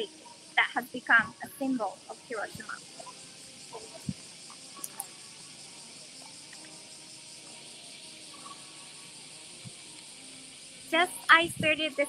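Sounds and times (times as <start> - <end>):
cicadas chorus: 0.0 - 12.0.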